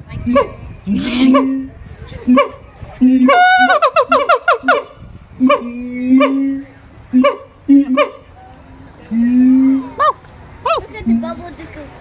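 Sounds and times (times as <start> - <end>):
ape barking calls: 3.3 - 8.3.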